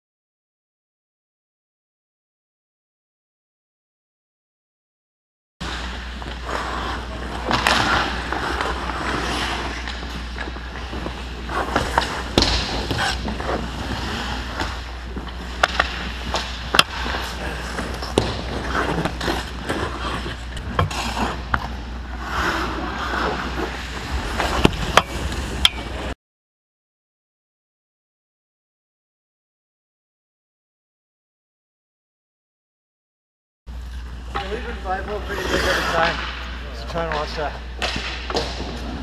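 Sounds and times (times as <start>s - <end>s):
hockey sticks and puck clacking: 5.6s - 26.2s, 33.8s - 39.0s
skates scraping on ice: 5.6s - 26.2s, 34.0s - 39.0s
steady low hum: 5.6s - 26.2s.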